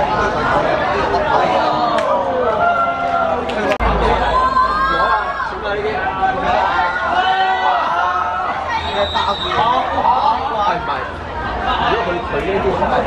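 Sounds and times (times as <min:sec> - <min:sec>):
people chattering and calling out: 0:00.0 - 0:13.0.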